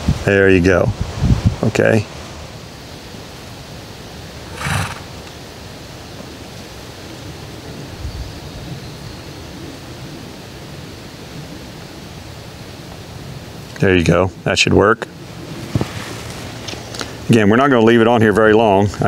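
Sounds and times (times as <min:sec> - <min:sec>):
steady background hiss: 0:00.0 - 0:19.0
horse snorting: 0:04.4 - 0:05.3.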